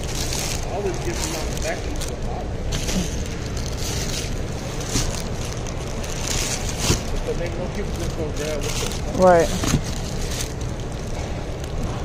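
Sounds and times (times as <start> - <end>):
distant voices: 0.0 - 12.0
plastic bag rustle: 0.0 - 12.0
store background noise: 0.0 - 12.0.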